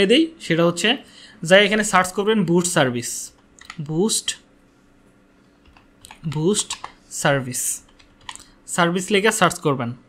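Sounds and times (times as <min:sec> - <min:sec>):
keyboard keystrokes: 0:03.6 - 0:03.9, 0:05.6 - 0:07.0, 0:07.8 - 0:08.5.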